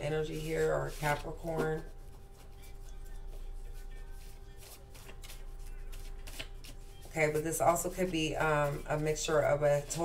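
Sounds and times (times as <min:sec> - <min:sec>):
cards being shuffled: 0:00.4 - 0:09.1.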